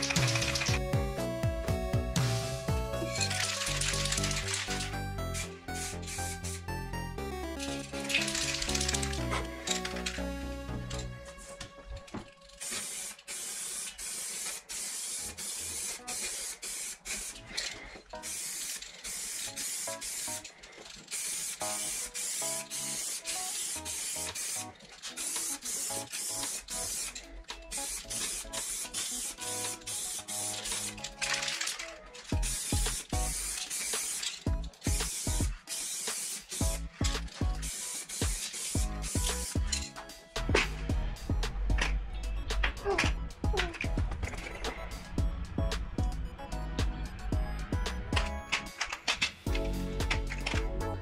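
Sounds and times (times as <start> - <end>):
spray can hissing in bursts: 0.0 - 0.8, 2.2 - 6.7, 7.6 - 10.2, 12.4 - 40.9.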